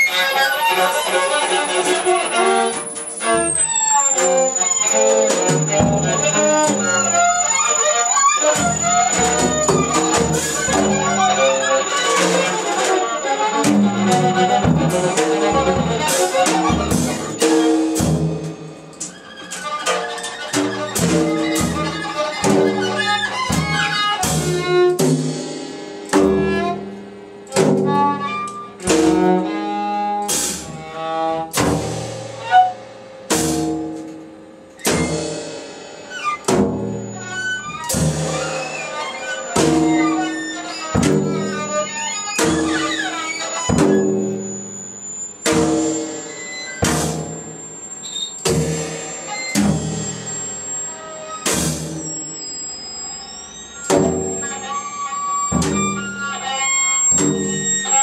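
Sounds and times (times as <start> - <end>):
faint high steady tone: 0.0 - 18.0, 36.8 - 58.0
struck electronic notes ringing: 0.0 - 24.9, 35.1 - 58.0.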